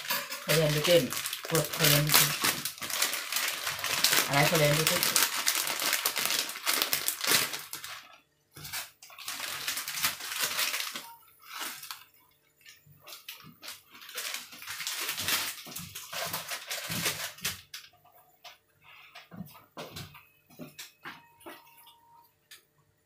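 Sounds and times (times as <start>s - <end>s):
plastic packet crinkling: 0.0s - 17.9s.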